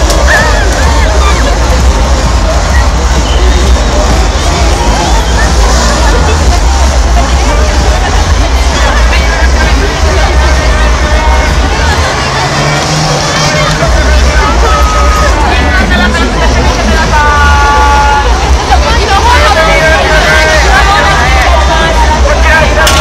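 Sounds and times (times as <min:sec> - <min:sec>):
background music: 0:00.0 - 0:23.0
crowd voices talking and calling: 0:00.0 - 0:23.0
heavy low rumble: 0:00.0 - 0:23.0.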